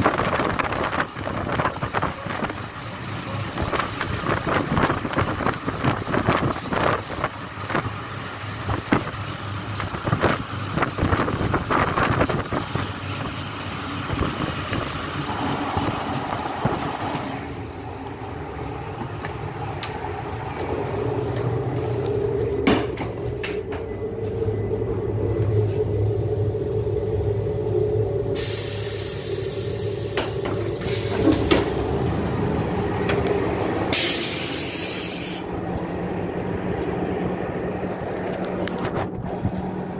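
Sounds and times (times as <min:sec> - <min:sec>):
diesel engine idling: 0:00.0 - 0:39.9
compressed air hisses: 0:28.4 - 0:32.9, 0:33.9 - 0:35.5
train wheels clattering over joints: 0:30.0 - 0:32.0.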